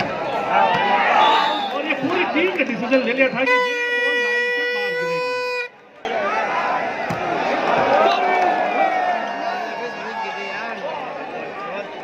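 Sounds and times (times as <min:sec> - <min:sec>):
crowd noise and voices: 0:00.0 - 0:12.0
man talking: 0:01.7 - 0:03.8.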